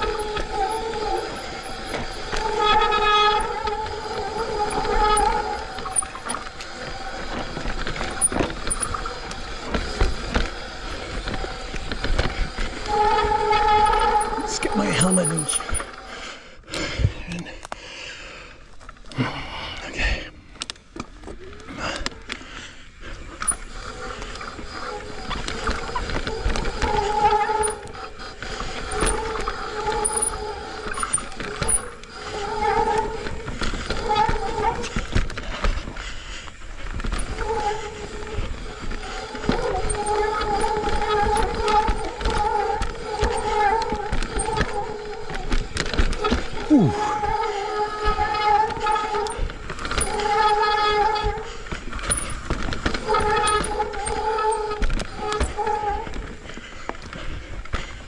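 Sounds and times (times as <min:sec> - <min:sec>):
bike rattles and knocks: 0:00.0 - 0:16.1, 0:23.2 - 0:58.0
steady buzz: 0:00.0 - 0:16.4
bike tyre noise on dirt: 0:00.0 - 0:58.0.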